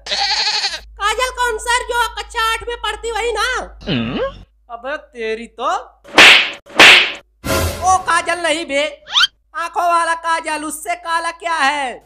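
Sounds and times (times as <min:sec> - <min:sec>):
cartoon slap effects: 0:06.1 - 0:07.2.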